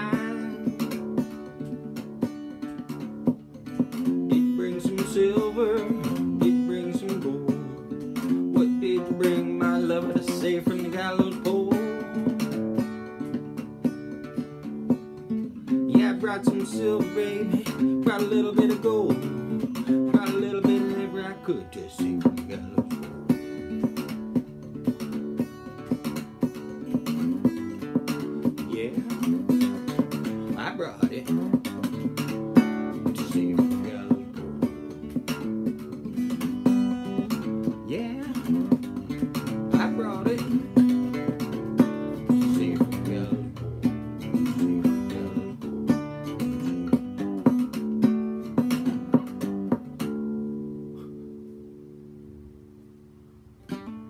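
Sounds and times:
acoustic guitar picked and strummed: 0.0s - 54.0s.

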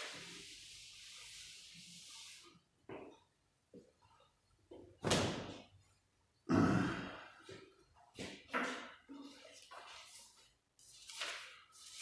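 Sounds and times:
man sighing: 6.5s - 7.4s.

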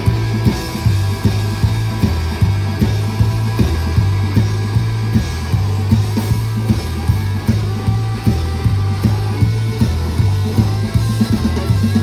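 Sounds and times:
bass line: 0.0s - 12.0s
drum beat: 0.0s - 12.0s
electric guitar: 0.0s - 12.0s.

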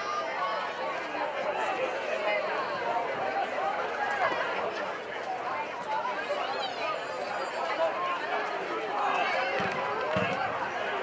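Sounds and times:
players and spectators chattering: 0.0s - 11.0s.

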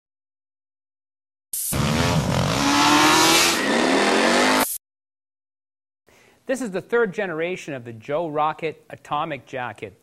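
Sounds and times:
engine revving: 1.7s - 4.8s.

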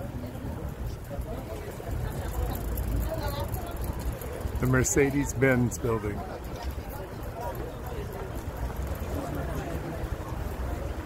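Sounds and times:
passers-by chatting: 0.0s - 11.0s
traffic rumble: 0.0s - 11.0s.

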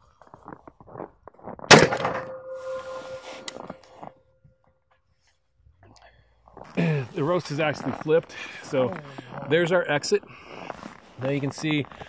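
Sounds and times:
rifle shot: 1.7s - 3.5s
steady ringing tone: 2.0s - 3.8s.

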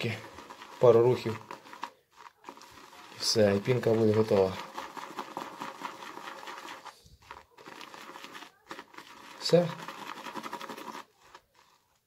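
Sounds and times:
brush swishing soap lather: 0.0s - 12.0s.

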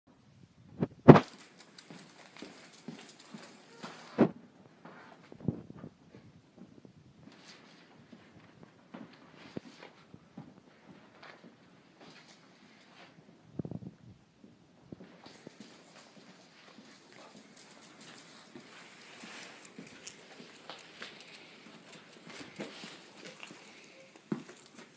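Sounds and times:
footsteps on concrete floor: 1.1s - 5.4s, 14.4s - 24.9s.

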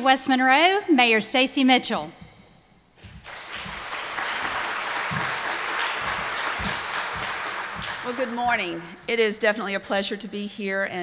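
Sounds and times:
audience applauding: 3.0s - 8.8s.

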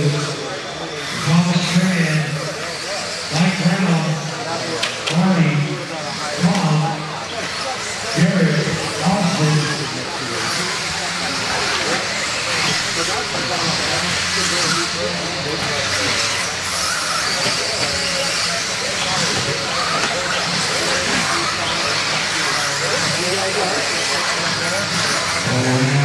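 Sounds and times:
indistinct voices: 0.0s - 26.0s.

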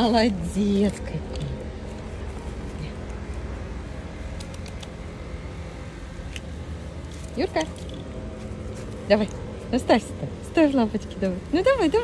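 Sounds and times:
low outdoor background rumble: 0.0s - 12.0s.

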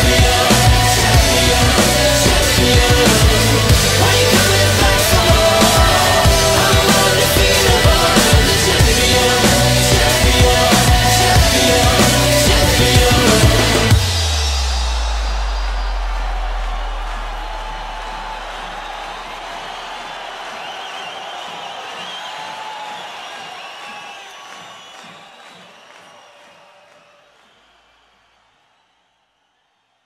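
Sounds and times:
crowd cheering and whooping: 0.0s - 28.2s.

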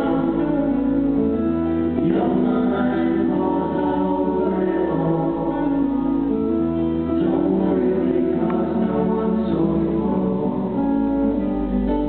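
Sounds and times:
acoustic guitars: 0.0s - 12.0s
voices singing in harmony: 0.0s - 12.0s.

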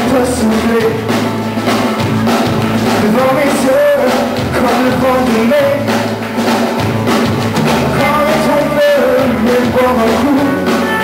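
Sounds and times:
man singing: 0.0s - 1.3s, 2.9s - 6.2s, 7.6s - 11.0s
rock band playing: 0.0s - 11.0s.

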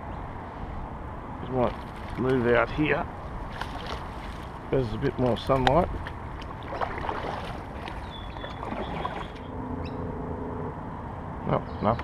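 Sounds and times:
reeds scraping against kayak: 6.5s - 9.4s.

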